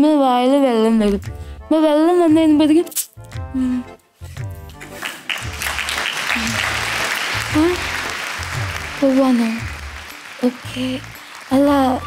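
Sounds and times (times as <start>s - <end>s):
background music with low beat: 1.0s - 12.0s
audience applauding: 4.7s - 12.0s.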